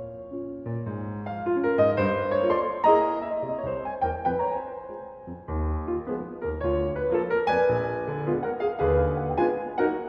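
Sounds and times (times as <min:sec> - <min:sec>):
grand piano playing jazz etude: 0:00.0 - 0:10.0.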